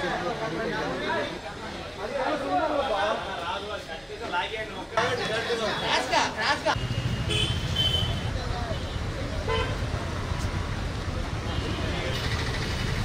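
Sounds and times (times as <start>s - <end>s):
passing traffic rumble: 5.0s - 13.0s.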